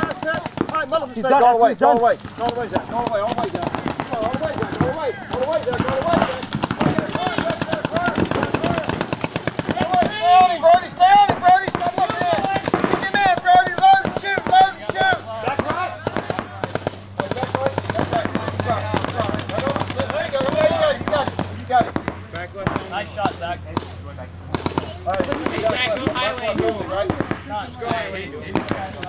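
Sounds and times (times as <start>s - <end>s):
paintball markers firing rapidly: 0.0s - 1.5s, 2.2s - 29.0s
people shouting: 0.0s - 1.8s, 2.7s - 21.5s.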